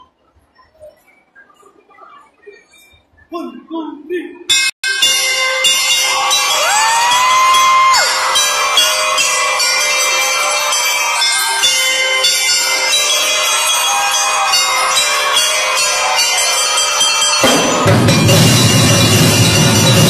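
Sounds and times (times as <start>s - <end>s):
bell lyres ringing: 4.5s - 20.0s
drum and lyre band playing: 17.4s - 20.0s.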